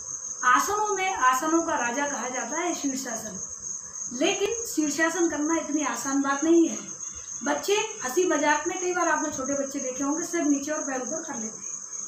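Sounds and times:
cricket trilling: 0.0 - 12.0
woman's voice: 0.4 - 3.4, 4.1 - 11.6.

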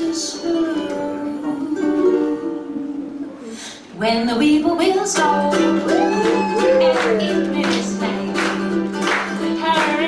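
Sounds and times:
guitar: 0.0 - 10.0
ukulele: 0.0 - 10.0.

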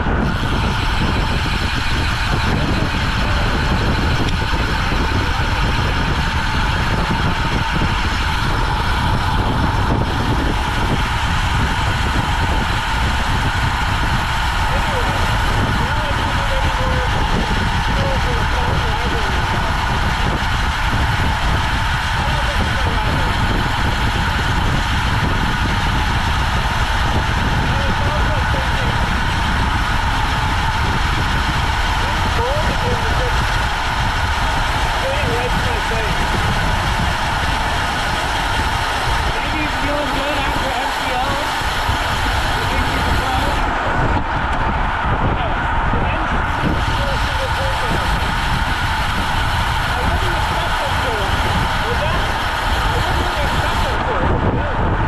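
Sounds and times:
wind rush over microphone: 0.0 - 55.0.

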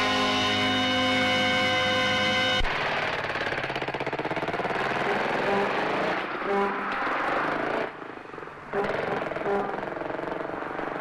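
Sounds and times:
held music chord: 0.0 - 2.6
vehicle engine running: 0.0 - 11.0.

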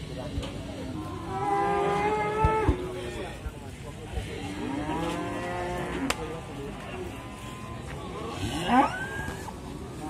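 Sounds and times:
cattle mooing: 7.0 - 9.3.

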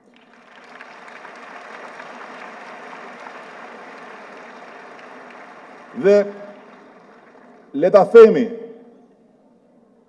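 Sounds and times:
audience applause: 0.0 - 8.4.

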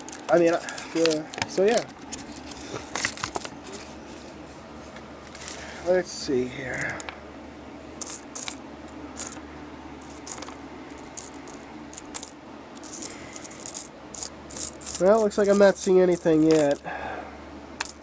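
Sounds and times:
coins clinking: 0.0 - 3.8, 8.0 - 8.6, 9.2 - 9.4, 10.0 - 16.8, 17.8 - 18.0.

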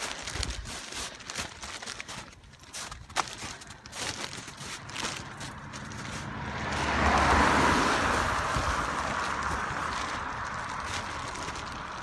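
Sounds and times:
car passing on wet road: 4.6 - 12.0.

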